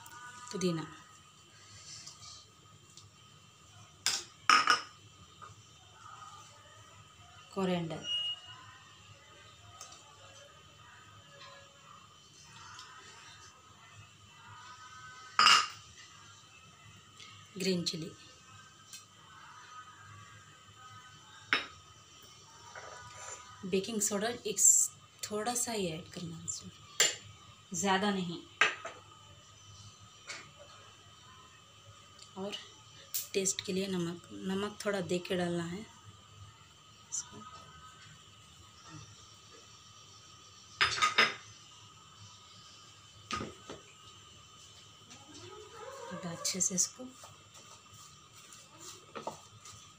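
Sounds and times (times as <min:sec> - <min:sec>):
kitchenware clinking: 0:04.0 - 0:05.0, 0:15.4 - 0:15.8, 0:40.8 - 0:41.5.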